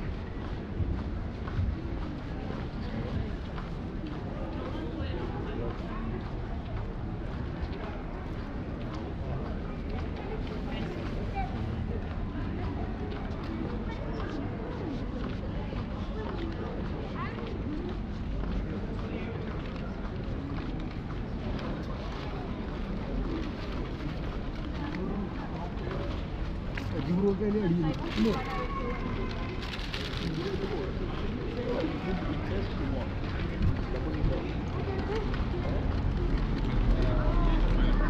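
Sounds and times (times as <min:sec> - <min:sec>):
indistinct chatter: 0:00.0 - 0:38.0.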